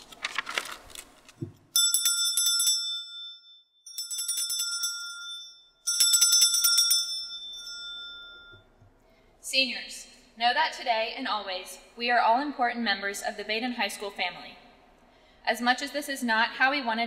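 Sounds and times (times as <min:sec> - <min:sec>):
hand bell ringing: 0:01.8 - 0:08.7.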